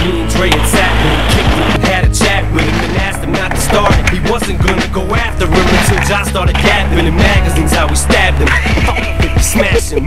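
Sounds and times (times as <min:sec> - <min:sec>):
skateboard clacking and grinding: 0:00.0 - 0:09.7
skateboard wheels rolling on concrete: 0:00.0 - 0:09.7
hip-hop music with beat: 0:00.0 - 0:10.0.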